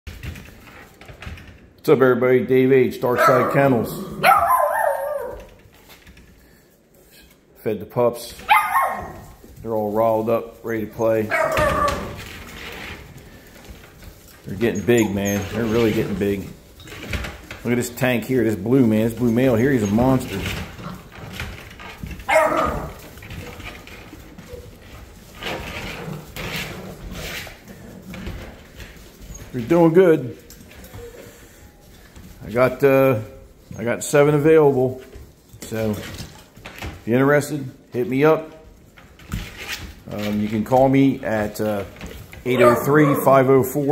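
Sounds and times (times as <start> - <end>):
puppy barking high-pitched: 3.2 - 3.6, 4.2 - 5.5, 8.4 - 9.2, 11.3 - 12.1, 22.3 - 22.9, 42.5 - 43.3
puppies whining: 3.2 - 5.6, 11.2 - 12.2, 14.6 - 15.8, 42.5 - 43.5.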